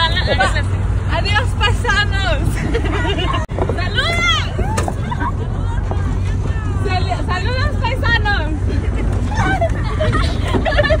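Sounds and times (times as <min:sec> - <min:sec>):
people's voices: 0:00.0 - 0:11.0
pickup trucks rumbling on dirt road: 0:00.0 - 0:11.0.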